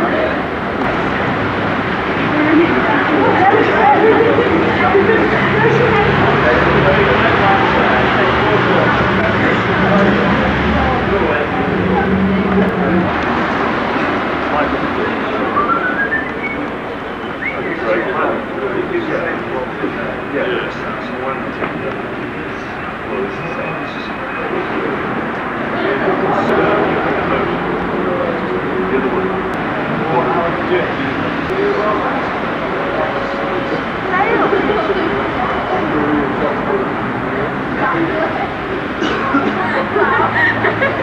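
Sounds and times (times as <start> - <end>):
overlapping indistinct voices: 0.0 - 41.0
steady background noise: 0.0 - 41.0.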